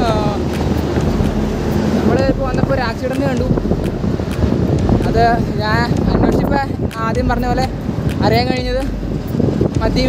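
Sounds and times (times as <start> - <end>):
truck passing: 0.0 - 10.0
wind noise on microphone: 0.0 - 10.0.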